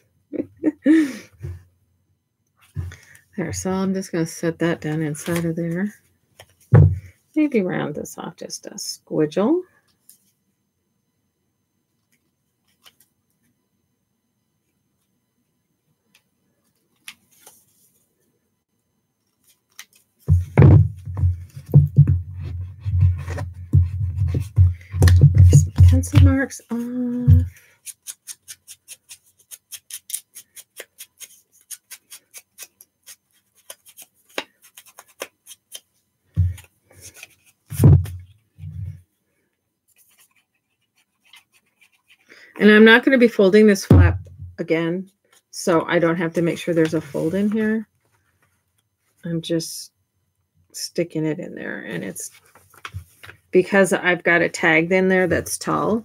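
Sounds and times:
scissors snipping paper: 27.8s - 35.8s.

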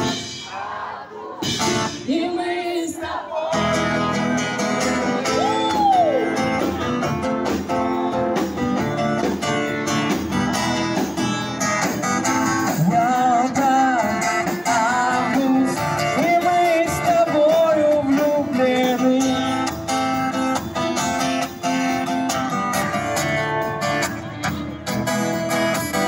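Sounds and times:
guitar playing: 1.4s - 26.0s
person singing: 2.0s - 7.0s, 12.6s - 19.7s
steady drum beat: 5.4s - 22.4s.

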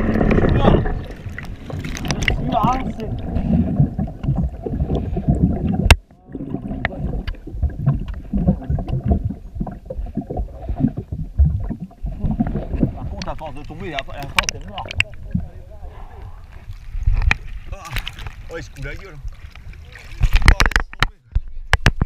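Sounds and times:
water splashing against housing: 12.2s - 21.2s.

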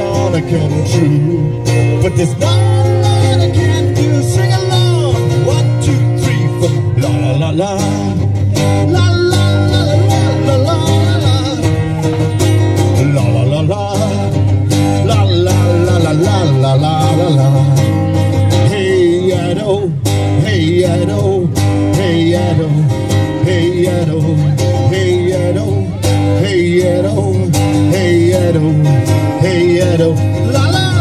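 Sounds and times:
person singing: 0.0s - 31.0s
second guitar: 0.0s - 31.0s
strummed acoustic guitar: 0.0s - 31.0s.

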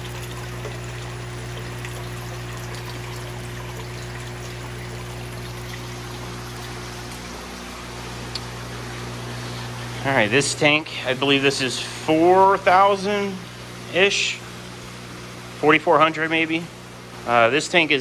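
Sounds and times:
water pouring and splashing: 0.0s - 9.8s
water bubbles: 0.0s - 10.6s
steady low hum: 0.0s - 18.0s.

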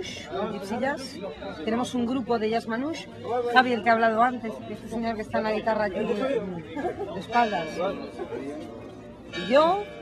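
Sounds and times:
overlapping background chatter: 0.0s - 10.0s.

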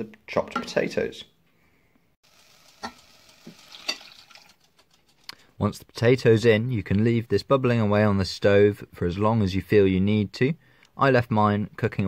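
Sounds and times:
vegetables sizzling in oil: 2.2s - 4.6s.

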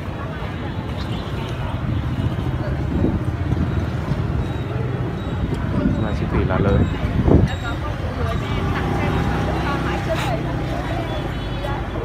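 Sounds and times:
motor vehicle rumbling: 0.0s - 12.0s
people talking: 5.5s - 12.0s.

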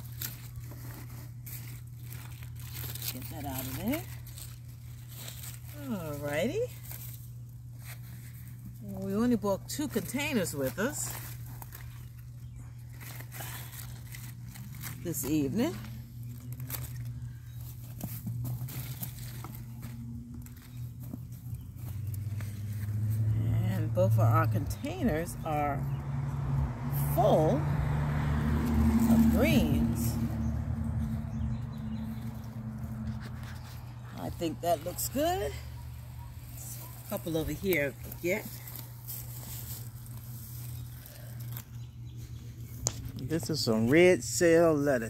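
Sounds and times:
leaves rustling and crinkling: 0.0s - 45.0s.

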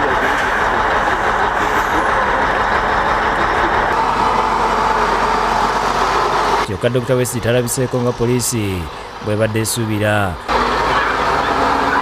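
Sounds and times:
heavy truck engine running: 0.0s - 12.0s.

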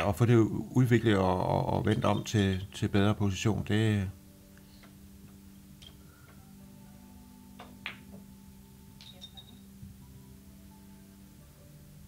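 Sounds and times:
billiard ball clicks: 7.6s - 8.2s.

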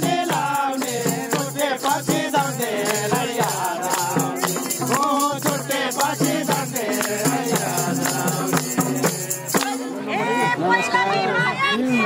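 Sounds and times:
tambourine jingling: 0.0s - 10.0s
crowd singing folk song: 0.0s - 12.0s.

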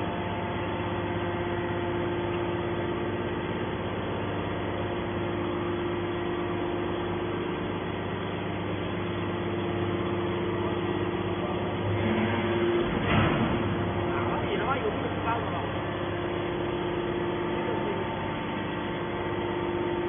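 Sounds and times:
hydraulic pump humming: 0.0s - 20.0s.

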